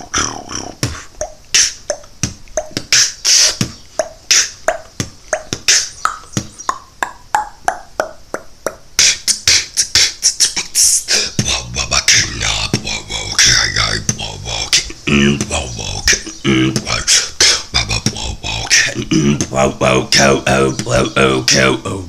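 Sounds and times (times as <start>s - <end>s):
beatboxing: 0.0s - 22.0s
low bass tone: 11.3s - 17.1s, 17.8s - 21.9s.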